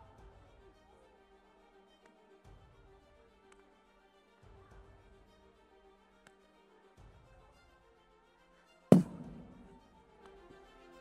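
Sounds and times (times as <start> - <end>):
loud sharp thump: 8.9 - 9.8.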